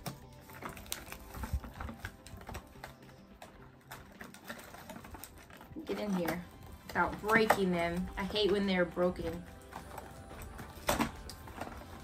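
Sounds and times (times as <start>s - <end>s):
plastic wrappers rustling: 0.0s - 12.0s
sharp plastic crinkle: 0.0s - 12.0s.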